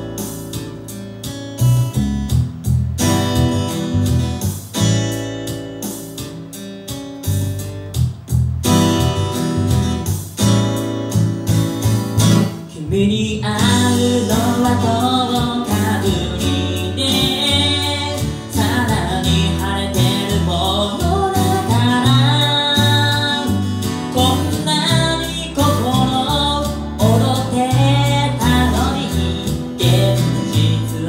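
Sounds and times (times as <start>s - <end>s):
acoustic guitar chords: 0.0s - 31.0s
man singing: 12.6s - 31.0s.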